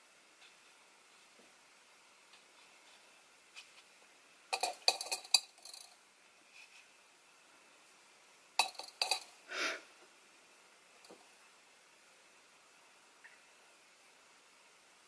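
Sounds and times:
paintbrush tapping container: 8.6 - 9.3.

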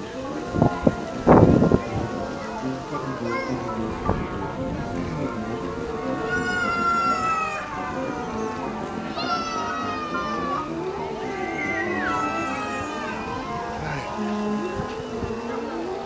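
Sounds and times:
distant military band music: 0.0 - 16.0
high sliding notes: 0.0 - 16.0.

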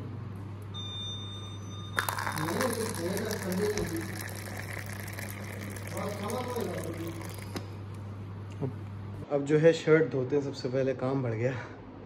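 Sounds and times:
tea pouring into paper cup: 2.0 - 7.8.

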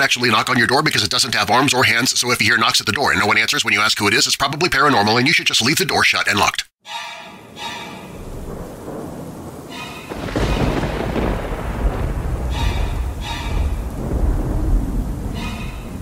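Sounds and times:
rain: 7.4 - 16.0
thunder rumbling: 7.4 - 16.0.

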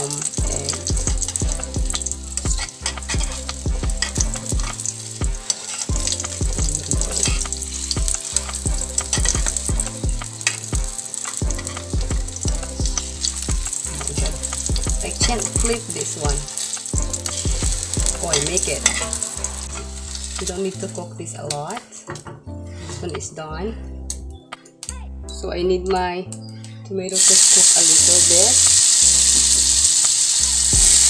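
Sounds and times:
metal spoon scraping a pan: 0.0 - 9.8, 10.4 - 20.8
egg sizzling in a wok: 0.0 - 20.9, 27.2 - 31.0.

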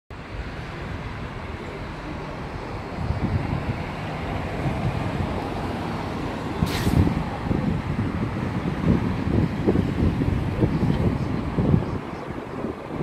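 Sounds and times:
steady outdoor rush: 0.1 - 13.0.

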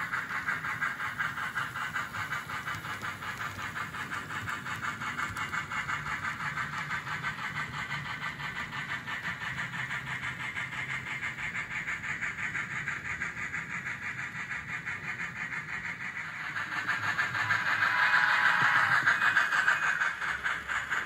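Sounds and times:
model train wheels rattling: 0.0 - 21.0.

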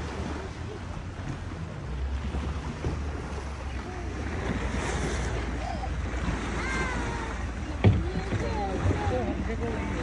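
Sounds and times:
boat engine rumble: 0.0 - 10.0
water lapping along boat hull: 0.0 - 10.0.

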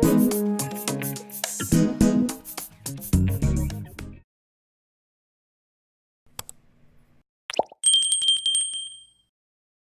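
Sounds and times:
notification bell ring: 7.8 - 9.3.

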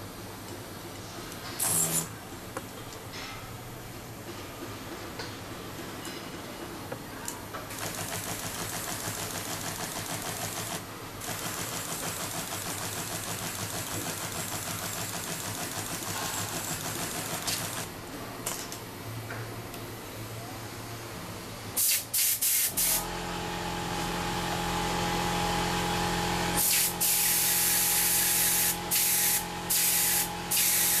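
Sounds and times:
spray gun hissing: 21.8 - 23.0, 26.6 - 31.0.

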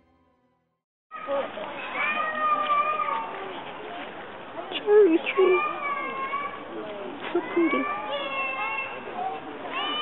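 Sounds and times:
people talking: 1.2 - 10.0.

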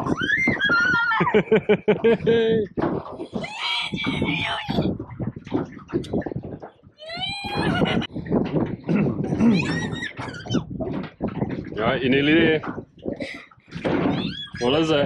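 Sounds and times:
high-pitched laughing and squealing: 0.1 - 2.3, 7.0 - 8.1, 9.2 - 10.6, 14.1 - 14.7.

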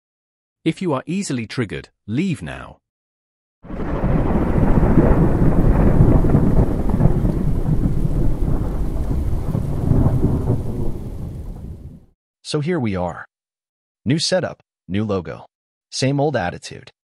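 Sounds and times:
deep thunder rumble: 3.7 - 12.1.

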